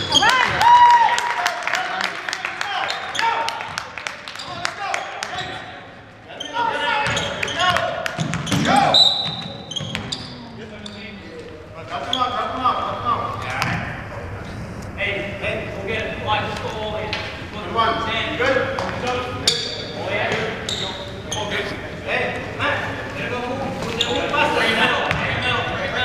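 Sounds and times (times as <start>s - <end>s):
voices echoing in a hall: 0.0s - 26.0s
basketball bouncing on hardwood floor: 8.2s - 10.2s.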